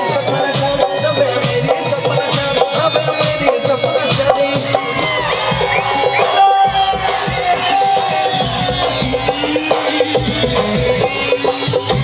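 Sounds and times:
live folk-pop band music: 0.0 - 12.0
crowd cheering and whooping: 4.1 - 12.0.

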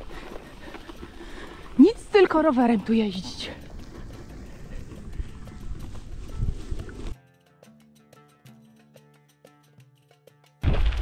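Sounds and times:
bike riding over bumpy grass: 0.0 - 7.2
wind buffeting microphone: 1.6 - 7.2
background music with light beat: 2.8 - 10.6.

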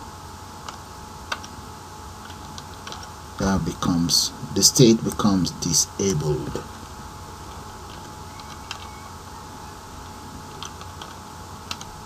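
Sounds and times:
faint steady hum: 0.0 - 12.0
keyboard typing: 0.6 - 1.6, 7.5 - 9.1, 10.0 - 12.0.

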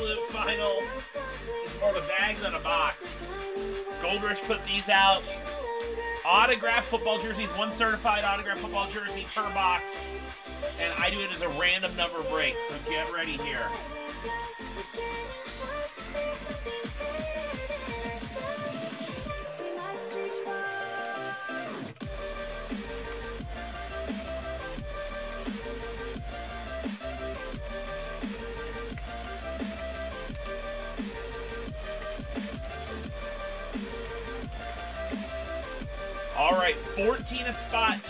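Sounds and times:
music with steady beat: 0.0 - 38.0.

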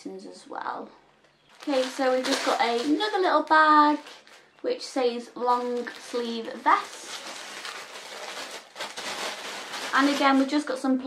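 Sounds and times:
fabric pouch rustling: 1.5 - 4.5, 5.4 - 10.6.

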